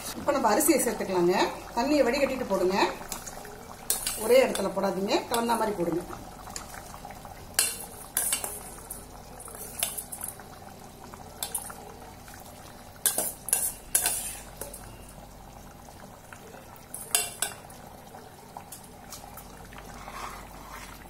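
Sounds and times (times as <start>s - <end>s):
gravy bubbling: 0.0s - 21.0s
ladle scraping metal pot: 13.1s - 14.7s, 19.8s - 21.0s.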